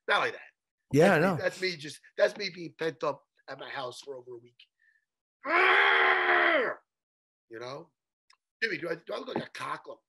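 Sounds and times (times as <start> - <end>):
man yelling: 1.0 - 1.6.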